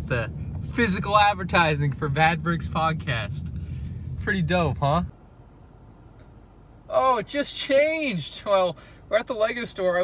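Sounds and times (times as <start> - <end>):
faint car interior background noise: 0.0 - 10.0.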